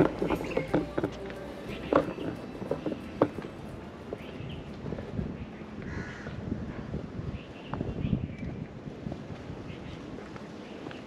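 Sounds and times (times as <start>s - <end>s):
footsteps on stone steps: 0.0s - 6.4s
wind rumble on microphone: 0.0s - 11.0s
crow cawing: 5.8s - 6.4s.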